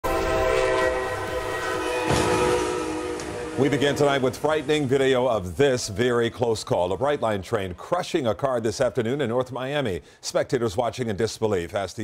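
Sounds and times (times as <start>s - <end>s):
train horn blast: 0.0s - 6.1s
passing train rumble: 0.0s - 7.8s.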